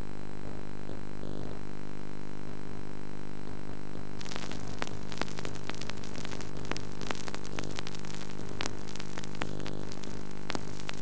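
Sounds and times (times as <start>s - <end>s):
electrical hum: 0.0s - 11.0s
static hiss: 0.0s - 11.0s
faint clicks: 4.2s - 11.0s.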